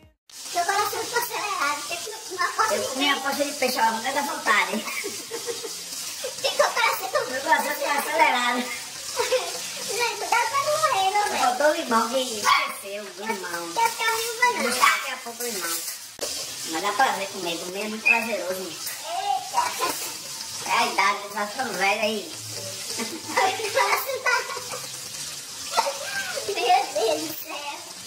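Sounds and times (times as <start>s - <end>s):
steady hiss: 0.3s - 28.0s
man and woman laughing and talking: 4.4s - 10.5s, 22.7s - 25.0s.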